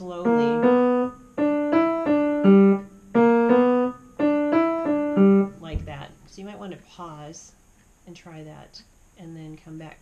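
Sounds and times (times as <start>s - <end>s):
piano single notes: 0.0s - 6.4s.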